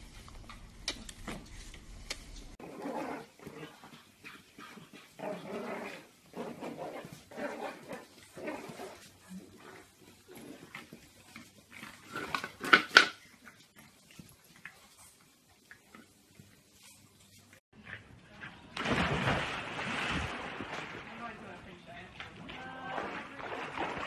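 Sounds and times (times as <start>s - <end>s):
puppies growling and yipping: 2.6s - 4.0s, 4.7s - 12.4s.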